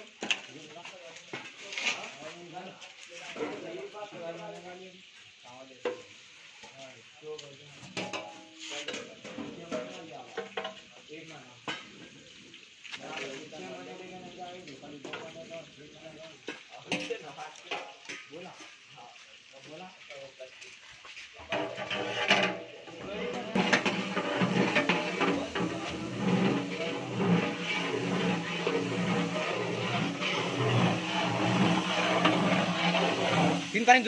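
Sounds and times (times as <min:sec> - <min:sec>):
people talking: 0:13.0 - 0:20.6, 0:23.0 - 0:34.0
wood fire crackling: 0:21.0 - 0:34.0.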